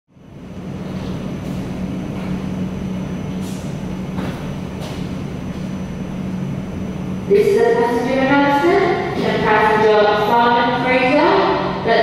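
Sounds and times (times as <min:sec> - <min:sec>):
low mechanical drone: 0:00.1 - 0:12.0.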